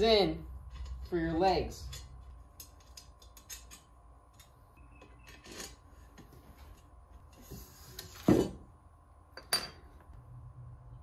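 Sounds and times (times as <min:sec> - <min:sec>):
small metal parts clicking: 0:01.8 - 0:04.5.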